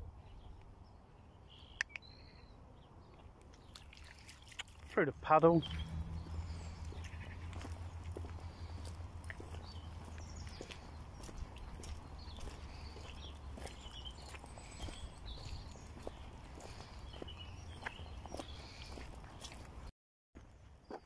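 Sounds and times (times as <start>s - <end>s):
footsteps on gravel: 3.6s - 21.0s.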